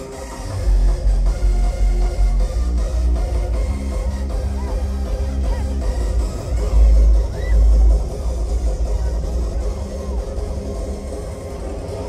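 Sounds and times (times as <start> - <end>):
heavy pounding bass: 0.0 - 12.0.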